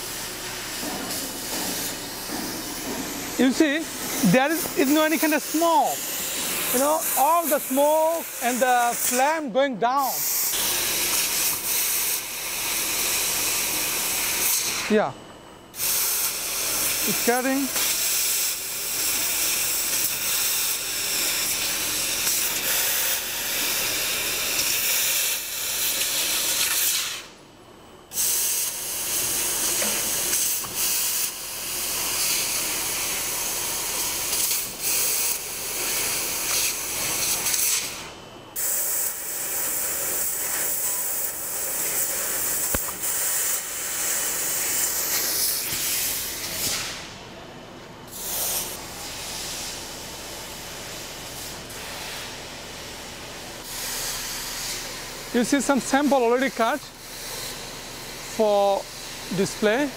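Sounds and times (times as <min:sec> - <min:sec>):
laser cutting head hissing: 0:00.0 - 0:09.4, 0:10.0 - 0:15.1, 0:15.8 - 0:27.3, 0:28.1 - 0:38.0, 0:38.6 - 0:47.0.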